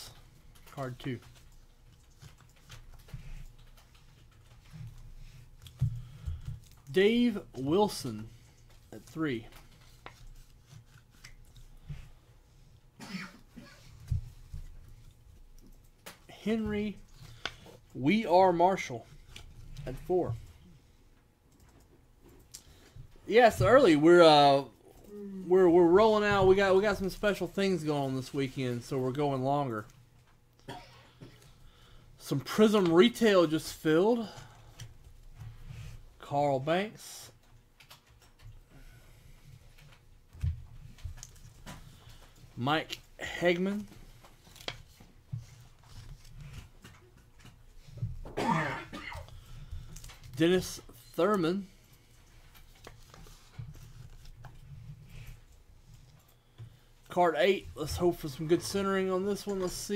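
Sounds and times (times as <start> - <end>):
soft rustling of cards: 0.0 - 48.4, 49.2 - 59.9
person coughing: 13.0 - 13.9, 30.6 - 31.3, 48.3 - 49.3.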